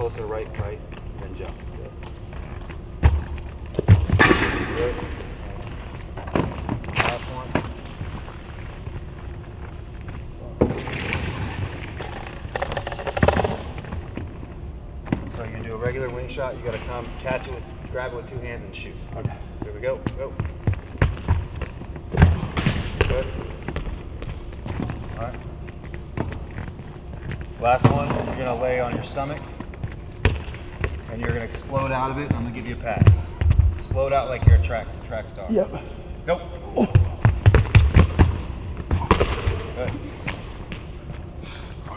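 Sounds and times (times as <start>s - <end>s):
arena room tone rumble: 0.0s - 41.9s
handball thudding: 37.0s - 39.7s.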